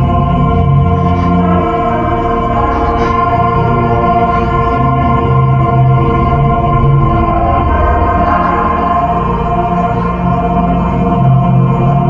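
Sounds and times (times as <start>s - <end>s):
repeating low bass note: 0.0s - 10.5s.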